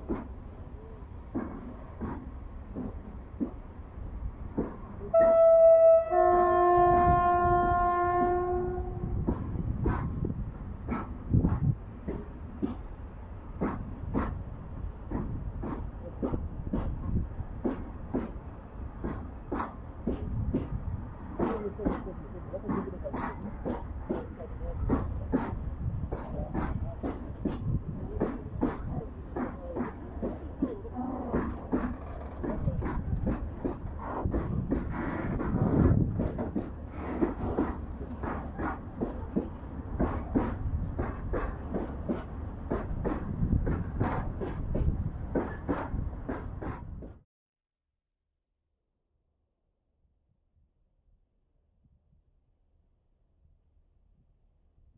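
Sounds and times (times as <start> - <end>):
diesel locomotive horn blasts: 5.1 - 9.2.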